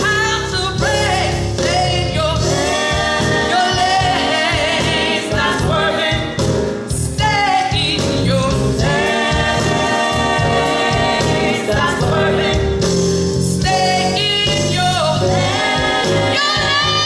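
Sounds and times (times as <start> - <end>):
woman singing gospel song: 0.0 - 6.2, 6.9 - 12.6, 13.5 - 17.0
live band playing: 0.0 - 17.0.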